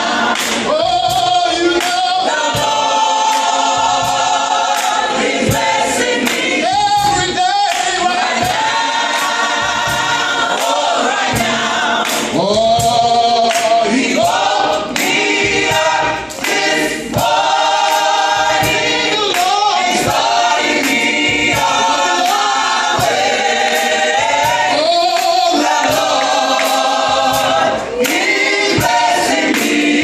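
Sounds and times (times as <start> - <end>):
faint steady beat: 0.0 - 30.0
group singing gospel song: 0.0 - 30.0.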